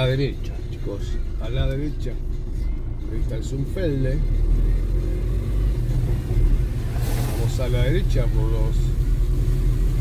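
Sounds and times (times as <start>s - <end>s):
car engine and road noise: 0.0s - 10.0s.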